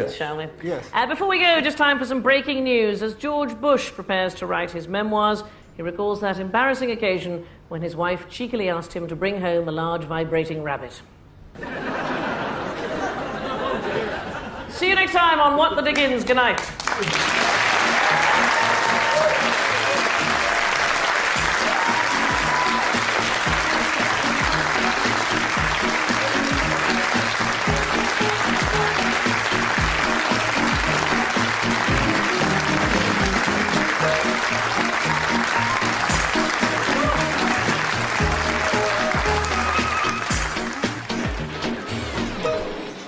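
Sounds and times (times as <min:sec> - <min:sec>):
studio audience applauding: 0:16.6 - 0:42.0
closing theme music: 0:17.2 - 0:43.0.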